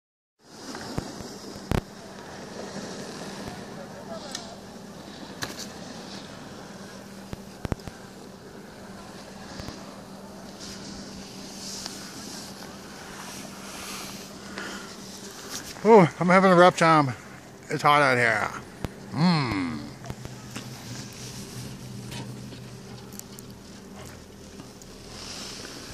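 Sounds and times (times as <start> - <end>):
air noise: 0.5 - 25.9
chairlift low hum: 0.5 - 25.9.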